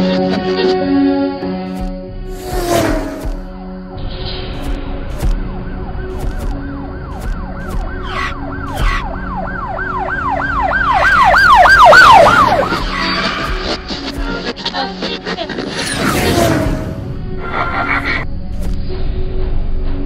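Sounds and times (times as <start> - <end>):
police siren wailing: 5.3 - 14.0.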